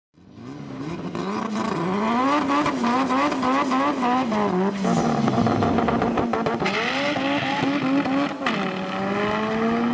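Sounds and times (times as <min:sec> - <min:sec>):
car engine revving high: 0:00.3 - 0:09.9.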